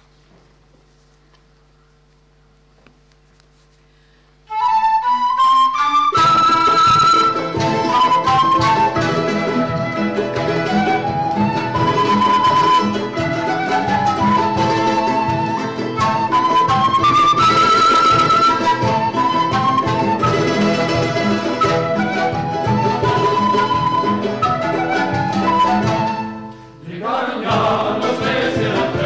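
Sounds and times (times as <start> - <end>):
flute melody: 4.4 - 28.8
panpipes: 4.4 - 29.0
plucked strings: 6.1 - 26.6
frame drum beat: 6.2 - 29.0.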